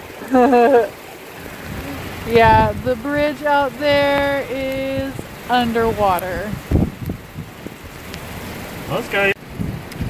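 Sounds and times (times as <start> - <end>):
heavy rain hiss: 0.0 - 10.0
wind buffeting microphone: 1.2 - 10.0.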